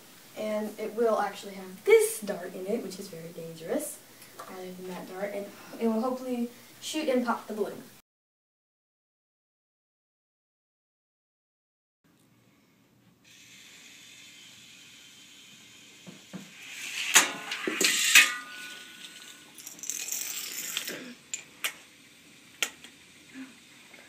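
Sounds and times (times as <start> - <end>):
plastic toy parts clattering: 17.6 - 21.8.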